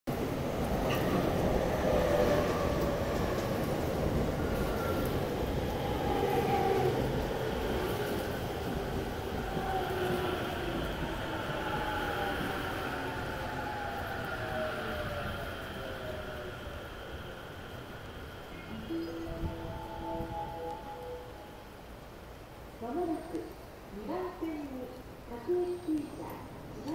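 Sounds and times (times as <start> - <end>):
steady tones: 18.4 - 22.5.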